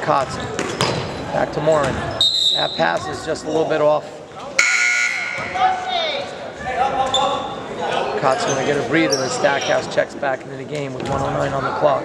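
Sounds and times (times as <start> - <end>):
scoreboard horn tone: 4.6 - 5.6.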